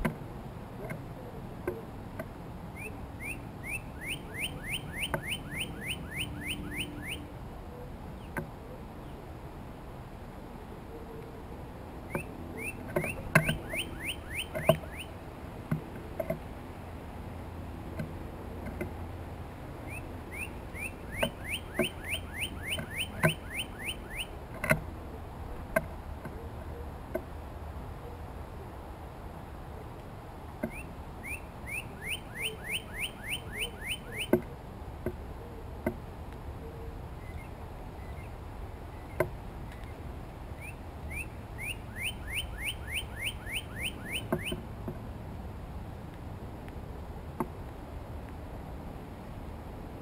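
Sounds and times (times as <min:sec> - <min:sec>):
bird singing whistled notes: 0:02.7 - 0:07.2, 0:12.1 - 0:15.2, 0:19.8 - 0:24.3, 0:30.7 - 0:34.4, 0:37.2 - 0:39.2, 0:40.6 - 0:44.6.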